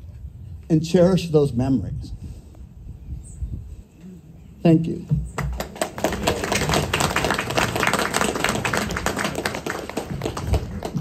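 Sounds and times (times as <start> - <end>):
audience applauding: 5.4 - 11.0.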